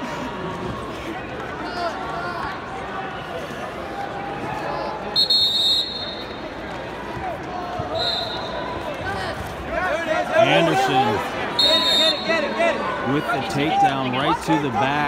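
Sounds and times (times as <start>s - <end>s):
coaches and spectators shouting: 0.0s - 15.0s
shrill whistle blasts: 5.2s - 6.4s, 7.9s - 8.6s, 11.6s - 12.4s.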